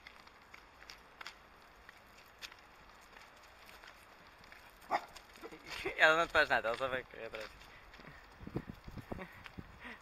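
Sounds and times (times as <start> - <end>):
small dog barking: 4.9 - 5.2.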